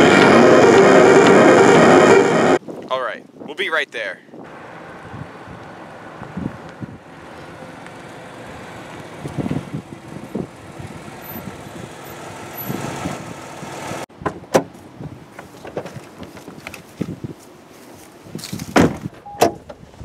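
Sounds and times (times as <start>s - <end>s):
car engine and tyres: 0.0s - 2.6s, 4.4s - 20.0s.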